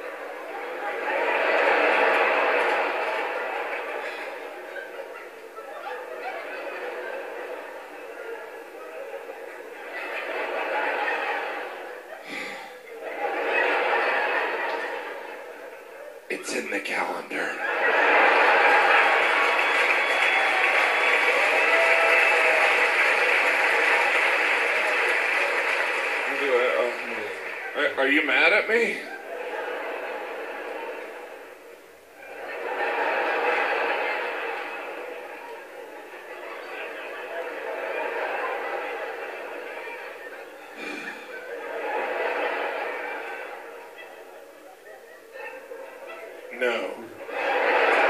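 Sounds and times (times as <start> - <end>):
audience laughing: 0.0 - 48.0.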